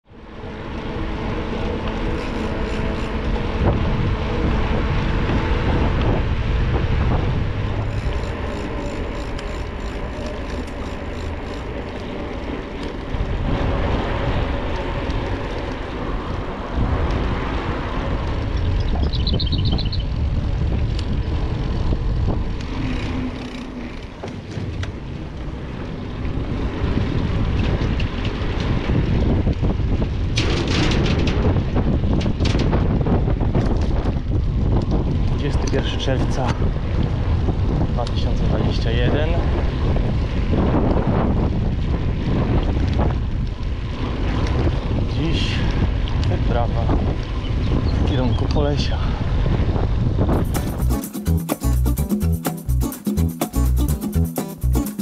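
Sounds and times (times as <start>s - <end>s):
wind buffeting microphone: 0.0s - 51.0s
low rumble: 0.1s - 48.0s
bicycle clicking and rattling: 0.1s - 48.7s.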